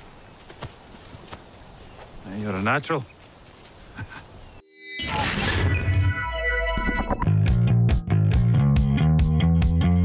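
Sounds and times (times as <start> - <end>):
horse hoof clops: 0.0 - 3.7.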